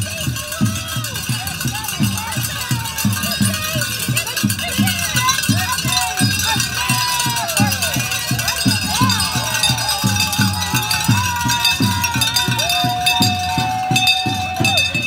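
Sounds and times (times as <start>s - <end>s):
handbells ringing: 0.0s - 15.0s
low drum beat: 0.0s - 15.0s
people calling out: 0.0s - 15.0s.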